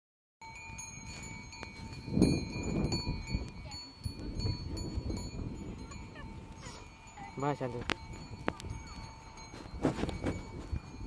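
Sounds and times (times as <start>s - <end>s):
bullock bells jingling: 0.4s - 11.0s.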